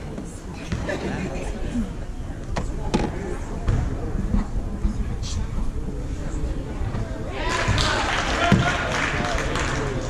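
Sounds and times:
spectators chattering: 0.0s - 10.0s.

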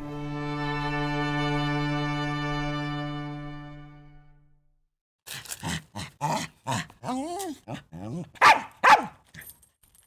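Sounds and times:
small dog barking: 6.3s - 9.2s.

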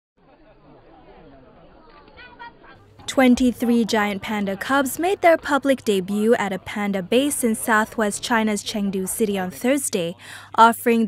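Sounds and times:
background chatter of people: 0.2s - 11.0s.

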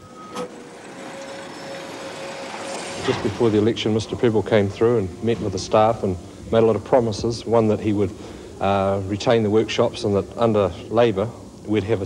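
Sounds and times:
diesel locomotive running: 0.0s - 11.1s
faint steady hum: 0.0s - 12.0s.

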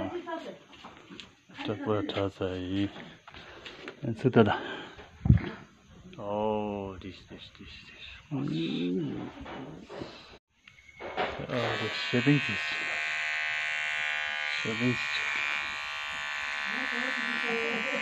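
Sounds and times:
electric hair trimmer buzzing: 11.4s - 18.0s.

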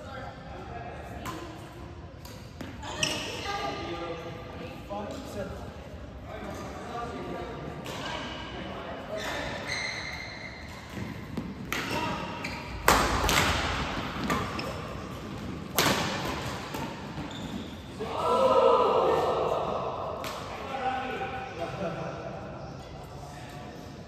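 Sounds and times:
players' voices: 0.0s - 10.0s, 10.9s - 24.0s
rackets hitting shuttlecock: 10.6s - 17.7s.

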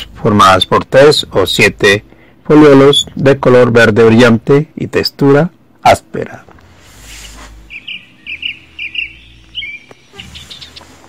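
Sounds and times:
bird chirping: 7.0s - 11.0s.

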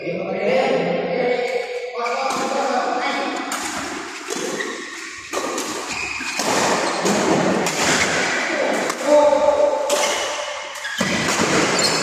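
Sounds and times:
racket hitting shuttlecock: 3.4s - 9.1s, 9.8s - 12.0s
shoe squeaks: 4.5s - 7.1s, 10.8s - 12.0s.

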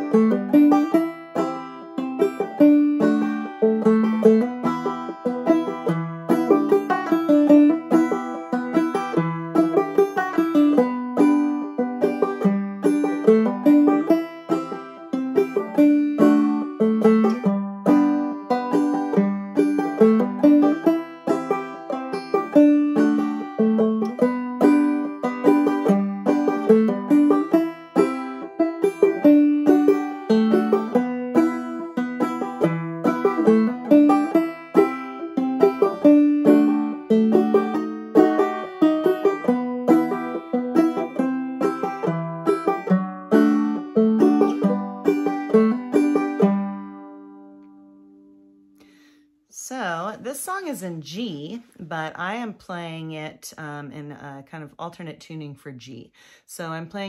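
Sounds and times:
banjo melody: 0.0s - 55.2s.

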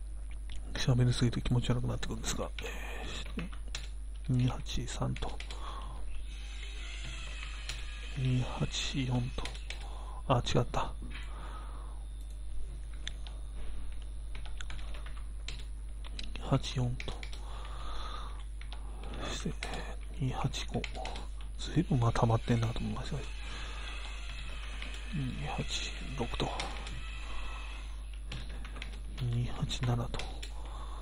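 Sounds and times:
steady low hum: 0.0s - 31.0s
computer keyboard typing: 2.4s - 5.9s, 9.2s - 10.0s, 12.2s - 17.8s, 18.4s - 30.8s
computer keyboard key clicks: 3.4s - 4.3s, 5.1s - 5.6s, 14.3s - 17.4s.

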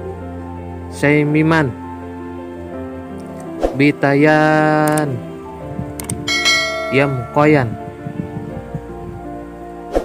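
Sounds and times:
soft background music: 0.0s - 10.0s
bright bell chime: 6.3s - 8.1s.

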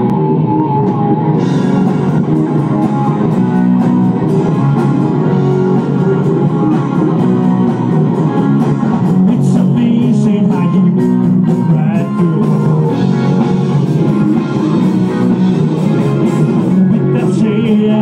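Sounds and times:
drum kit beat: 0.0s - 18.0s
electric guitars: 0.0s - 18.0s.

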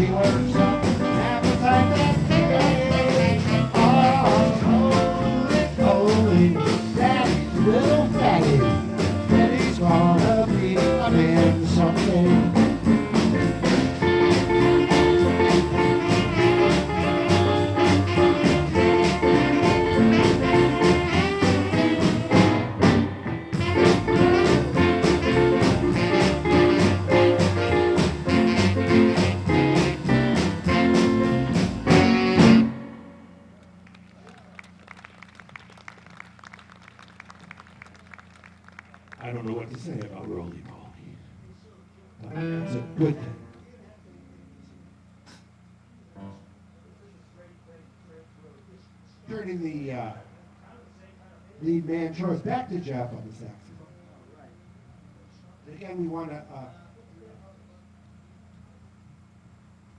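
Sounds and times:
man singing: 0.0s - 13.0s
live blues band playing: 0.0s - 33.8s, 42.2s - 43.6s
low steady hum: 0.0s - 59.9s.

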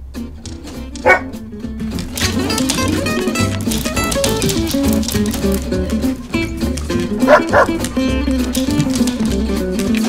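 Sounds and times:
background music: 0.0s - 10.0s
dog barking: 1.0s - 1.4s, 7.2s - 7.9s.

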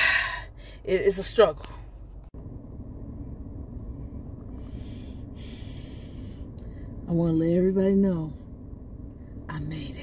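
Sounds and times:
car cabin hum: 0.0s - 10.0s
soft breath: 4.5s - 6.9s.

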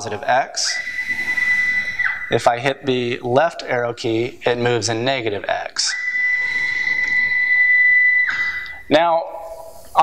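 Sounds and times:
stepper motor whine: 0.0s - 2.9s, 5.9s - 8.8s.

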